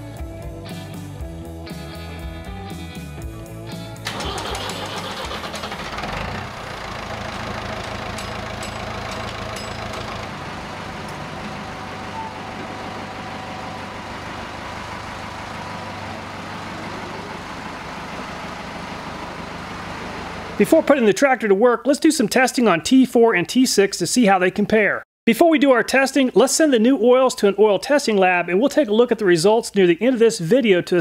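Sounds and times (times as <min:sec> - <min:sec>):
tractor diesel engine running: 0:03.9 - 0:20.9.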